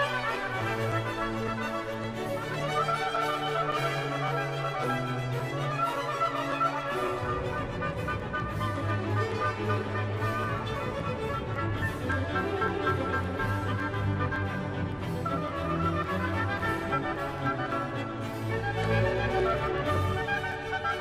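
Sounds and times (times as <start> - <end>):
violins bowing sustained notes: 0.0 - 21.0.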